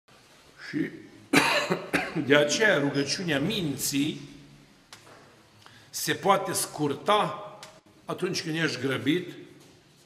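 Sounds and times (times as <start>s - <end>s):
man coughing: 1.3s - 2.3s.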